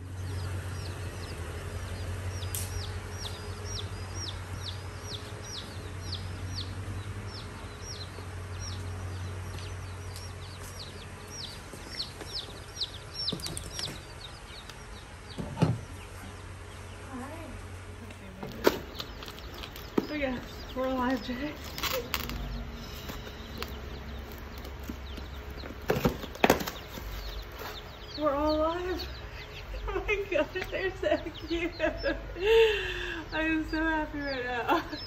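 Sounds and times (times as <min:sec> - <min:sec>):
chicks peeping: 0:00.0 - 0:35.0
steady low hum: 0:00.0 - 0:35.0
knocks on cardboard box: 0:25.8 - 0:26.8.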